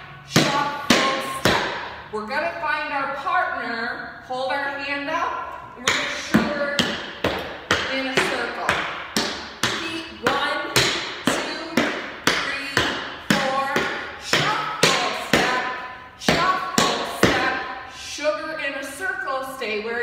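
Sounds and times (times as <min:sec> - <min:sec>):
tap shoes on wooden floor: 0:05.8 - 0:17.4.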